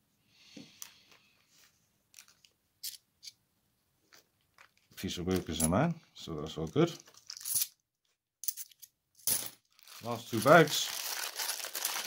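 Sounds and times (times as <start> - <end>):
coins clinking: 7.3 - 7.8, 8.4 - 9.6.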